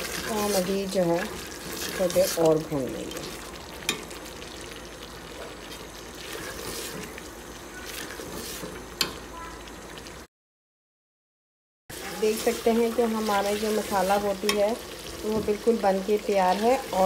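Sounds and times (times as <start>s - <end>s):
spatula stirring: 0.0s - 9.2s, 11.9s - 15.8s
masala sizzling in a pot: 0.0s - 10.3s, 11.9s - 17.0s.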